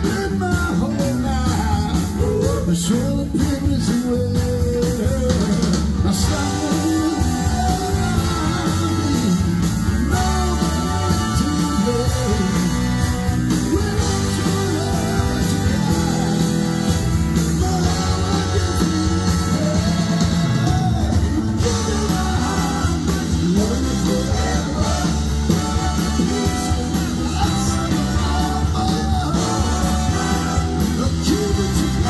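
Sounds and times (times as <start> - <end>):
live rock band playing: 0.0 - 32.0
man singing lead vocal: 0.0 - 32.0.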